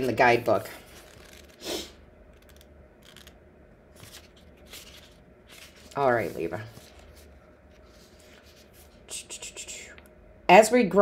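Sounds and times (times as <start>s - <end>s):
paper pages rustling: 0.8s - 1.6s, 2.4s - 9.0s.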